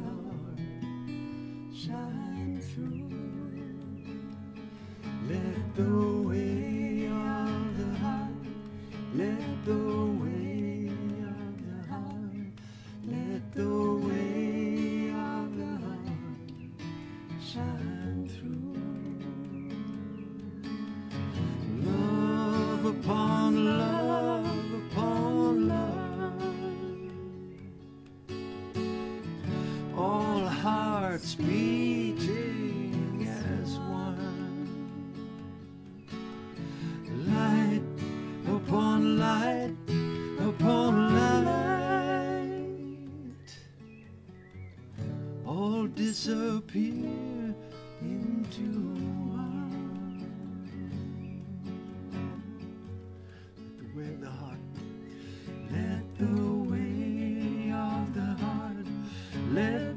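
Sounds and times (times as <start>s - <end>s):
person singing with vibrato: 0.0s - 20.8s, 21.4s - 27.9s, 29.4s - 35.6s, 36.7s - 43.6s, 55.4s - 59.9s
acoustic guitar strumming: 0.0s - 59.9s.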